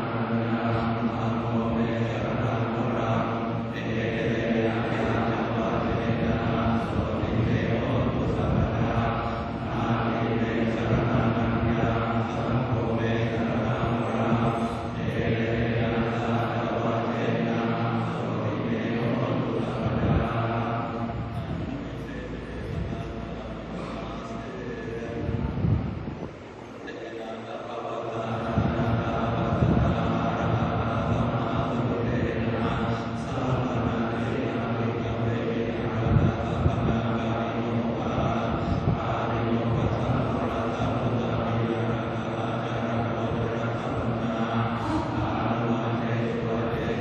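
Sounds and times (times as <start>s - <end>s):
monotone monastic chanting: 0.0s - 47.0s.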